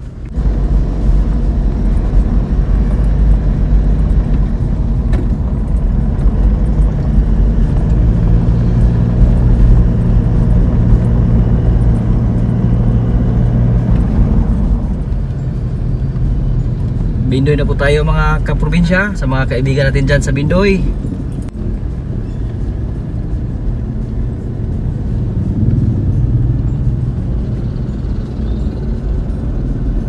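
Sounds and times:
engine hum: 0:00.0 - 0:30.0
road and engine rumble: 0:00.0 - 0:30.0.

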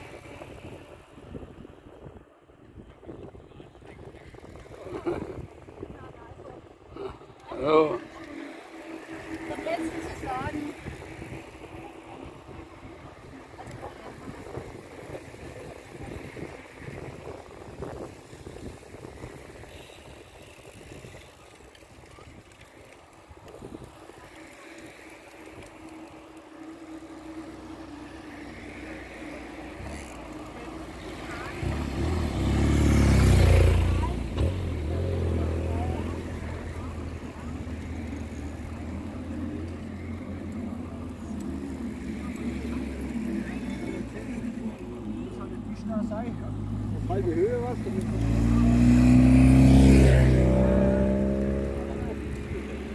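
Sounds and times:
cyclists chattering: 0:00.0 - 0:52.9
motorcycle passing by: 0:03.9 - 0:52.9.

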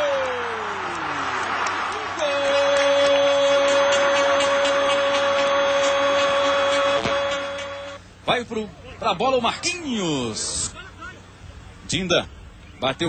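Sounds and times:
crowd noise: 0:00.0 - 0:08.0.

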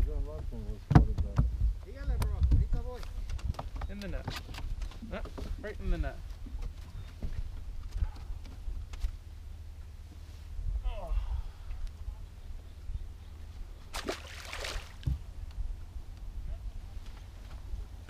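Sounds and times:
wind rumble on microphone: 0:00.0 - 0:14.0, 0:14.9 - 0:18.0
splash on water: 0:13.9 - 0:15.1.

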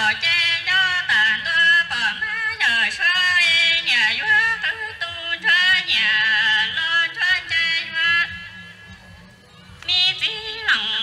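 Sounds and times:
woman singing into a microphone: 0:00.0 - 0:08.5, 0:09.8 - 0:11.0.

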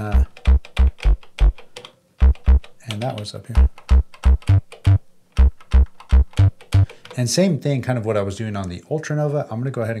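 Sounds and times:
deep sampled bass hits: 0:02.2 - 0:02.6, 0:03.6 - 0:06.6.

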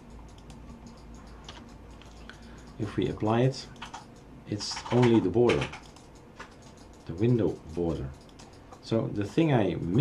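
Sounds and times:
computer keyboard clicking: 0:00.0 - 0:09.0
computer mouse clicking: 0:00.0 - 0:10.0
low steady hum: 0:00.0 - 0:10.0.

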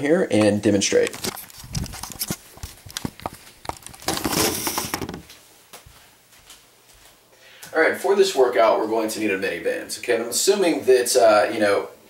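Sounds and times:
hand scraping against camera: 0:01.2 - 0:05.2.

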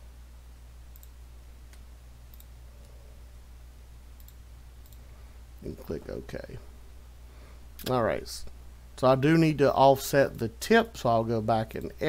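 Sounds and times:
low electrical hum: 0:00.0 - 0:12.0
computer mouse clicks: 0:00.9 - 0:03.0, 0:04.2 - 0:05.0.

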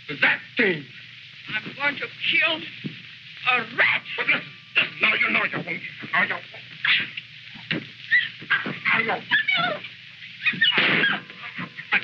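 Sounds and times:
people crying and shrieking: 0:08.0 - 0:09.8, 0:10.4 - 0:12.0.

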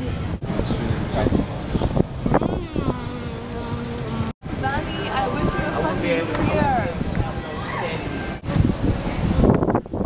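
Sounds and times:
wind rumbling on microphone: 0:00.0 - 0:10.0
people talking: 0:02.3 - 0:09.5.

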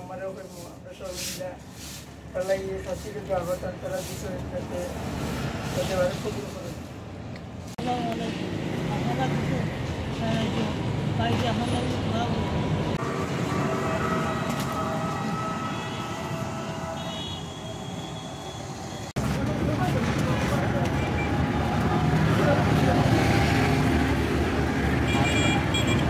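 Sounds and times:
roadside traffic: 0:00.0 - 0:26.0
people's voices: 0:19.2 - 0:23.7.

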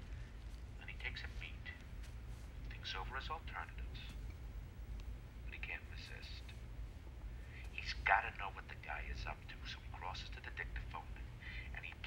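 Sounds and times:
steady low hum: 0:00.0 - 0:12.0
person speaking over phone: 0:00.8 - 0:01.9, 0:02.7 - 0:04.2, 0:05.5 - 0:06.5, 0:07.6 - 0:12.0.

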